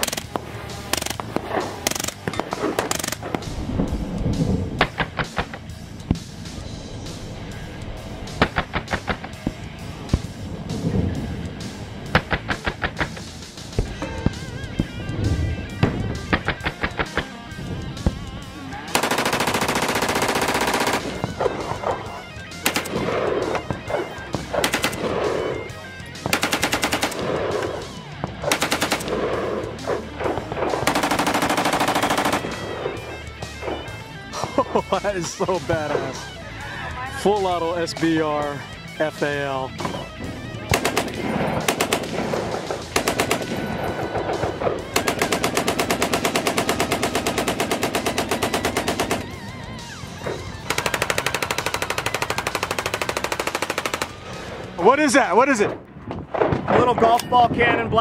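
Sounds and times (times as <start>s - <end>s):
automatic gunfire bursts: 0.0s - 3.4s, 18.9s - 21.9s, 22.6s - 23.7s, 24.5s - 25.6s, 26.2s - 33.0s, 40.7s - 49.4s, 50.7s - 54.3s
gunshots: 0.0s - 6.6s, 7.6s - 36.3s, 39.2s - 54.8s, 55.6s - 57.2s.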